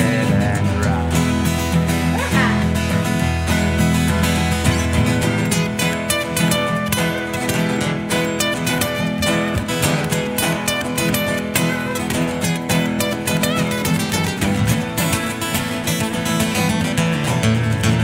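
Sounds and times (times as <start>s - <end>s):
acoustic guitar strumming and picking: 0.0s - 18.0s.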